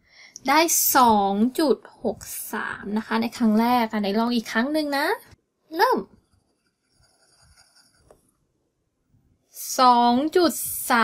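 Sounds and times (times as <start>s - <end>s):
pencil scratching on paper: 6.2s - 8.4s.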